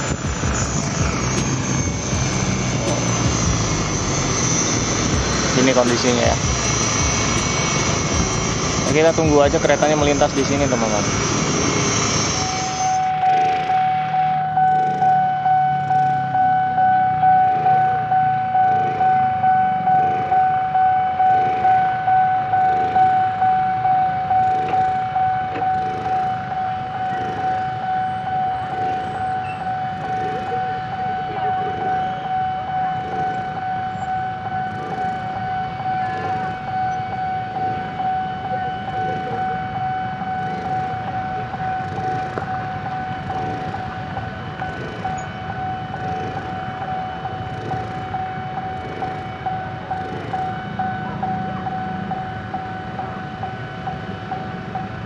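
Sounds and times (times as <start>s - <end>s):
level-crossing warning bell: 0.0s - 55.0s.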